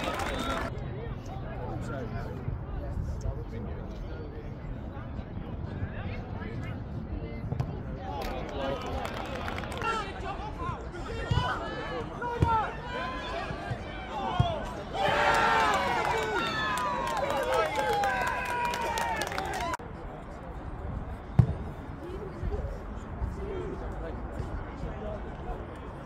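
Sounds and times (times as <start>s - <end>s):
people shouting and cheering: 0.0s - 0.7s, 8.6s - 19.8s.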